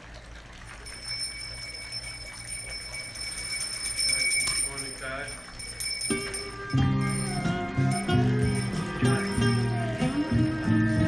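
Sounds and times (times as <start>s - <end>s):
hand bell ringing rapidly: 0.8s - 11.0s.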